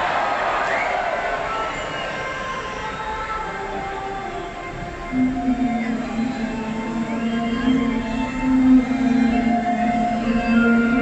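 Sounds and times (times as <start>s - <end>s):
held music tones: 0.0s - 11.0s.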